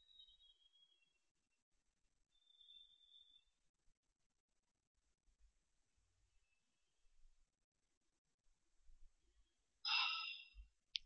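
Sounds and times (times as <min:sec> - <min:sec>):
person breathing: 0:09.9 - 0:10.7.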